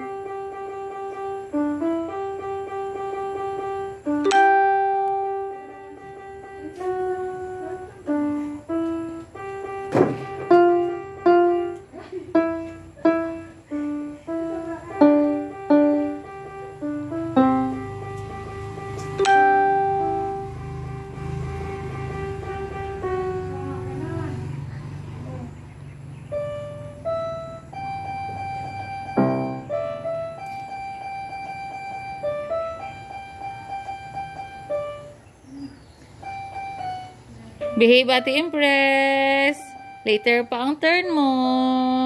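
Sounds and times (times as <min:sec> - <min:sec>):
electronic keyboard single notes: 0:00.0 - 0:24.2, 0:26.2 - 0:42.0.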